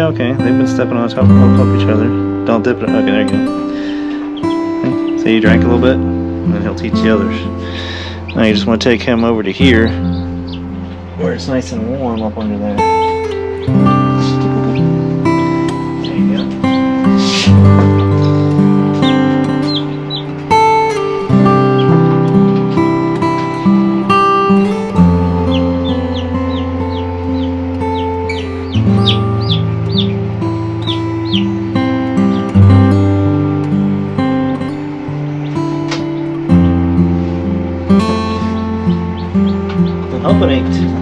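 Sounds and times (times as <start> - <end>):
acoustic guitar music: 0.0 - 41.0
chicks peeping: 0.7 - 41.0.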